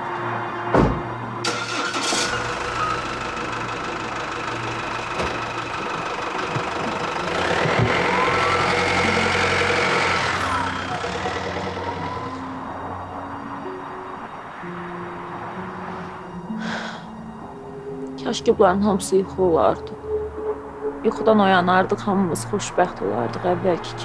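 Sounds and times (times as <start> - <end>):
background music: 0.0 - 24.0
thud: 0.7 - 1.1
car engine driving off: 1.4 - 17.3.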